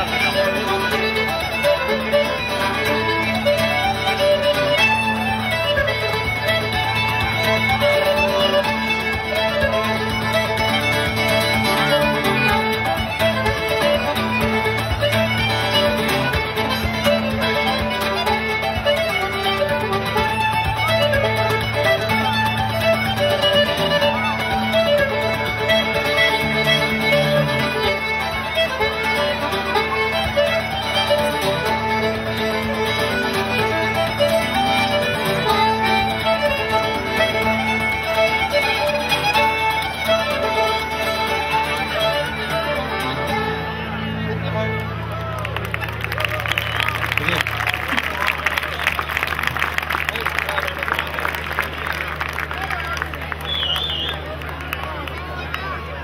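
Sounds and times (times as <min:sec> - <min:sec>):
acoustic guitar accompaniment: 0:00.0 - 0:45.1
accordion: 0:00.0 - 0:56.0
fiddle melody: 0:00.0 - 0:56.0.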